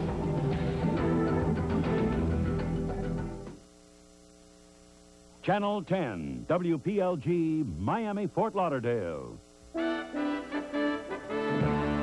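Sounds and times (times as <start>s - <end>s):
background music: 0.0s - 3.6s, 9.7s - 12.0s
electrical mains hum: 0.0s - 12.0s.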